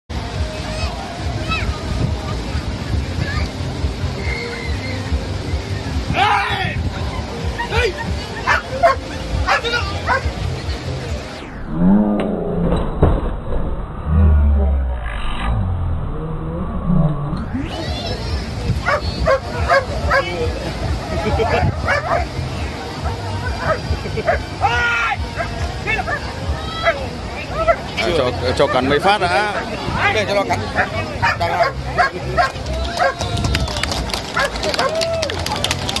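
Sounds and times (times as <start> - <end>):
people's voices: 0.1 - 11.7, 17.3 - 36.0
dog barking: 8.5 - 10.3, 18.8 - 20.3, 21.5 - 22.3, 30.8 - 33.2
dog yipping: 18.8 - 20.3.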